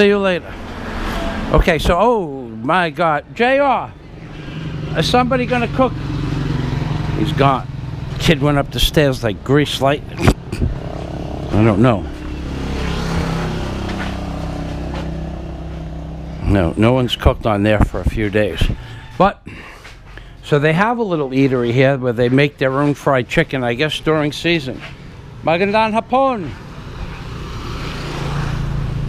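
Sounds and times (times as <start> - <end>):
road noise: 0.0 - 29.0
vehicle engine humming: 0.0 - 29.0.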